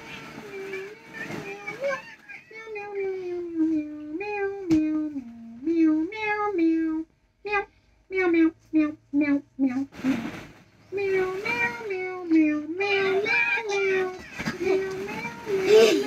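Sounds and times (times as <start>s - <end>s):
child singing wordless tune: 10.9s - 16.0s.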